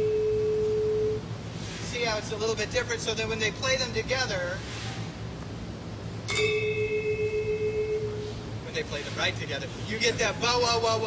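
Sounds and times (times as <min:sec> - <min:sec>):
metallophone key struck and ringing: 0:06.3 - 0:07.5.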